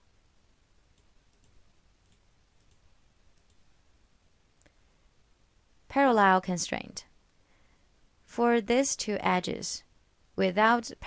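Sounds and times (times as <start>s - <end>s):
computer mouse clicks: 0.9s - 3.6s.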